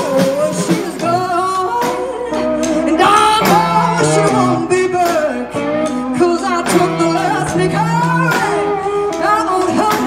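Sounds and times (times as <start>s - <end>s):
drums: 0.0s - 10.0s
live blues-rock band: 0.0s - 10.0s
person singing: 0.0s - 10.0s
slide guitar: 0.0s - 10.0s.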